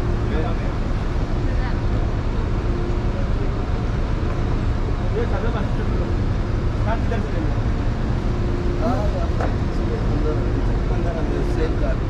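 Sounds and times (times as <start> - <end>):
vehicle engine rumbling: 0.0 - 11.9
faint voices talking: 8.7 - 12.0.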